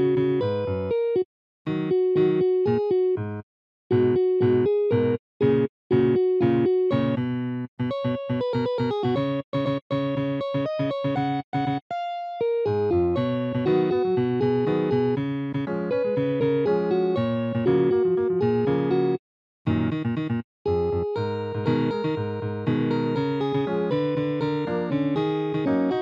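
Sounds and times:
synthesized electric piano chords: 0:00.0 - 0:26.0.

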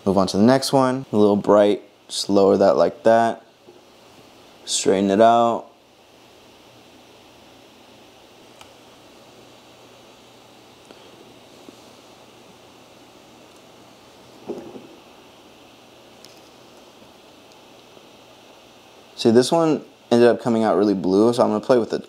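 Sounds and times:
steady hiss: 0:00.0 - 0:22.0.

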